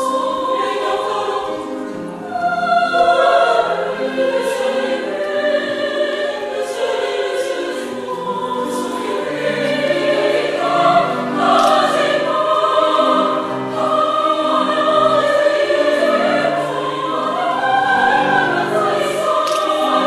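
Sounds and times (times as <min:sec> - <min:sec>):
women's choir singing: 0:00.0 - 0:20.0.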